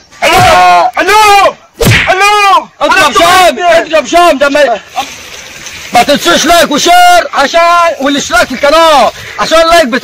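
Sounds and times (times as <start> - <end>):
sharp thump: 1.8 - 2.2.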